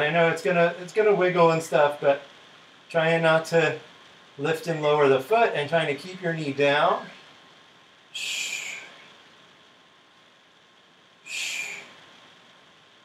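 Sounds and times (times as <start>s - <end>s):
sharp hissed exhales: 8.2s - 9.1s, 11.3s - 12.0s.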